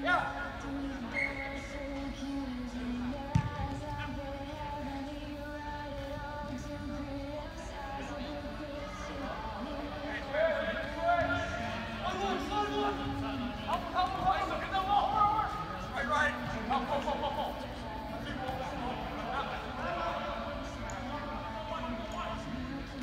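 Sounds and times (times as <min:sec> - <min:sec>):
overlapping indistinct voices: 0:00.0 - 0:23.0.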